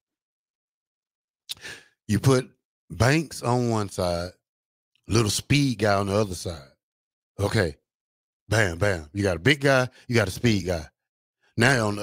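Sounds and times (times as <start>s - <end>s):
man breathing in: 1.5s - 2.0s.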